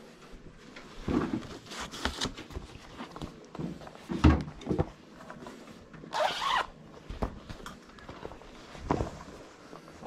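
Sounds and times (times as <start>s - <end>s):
zipper pulled open: 6.1s - 6.8s.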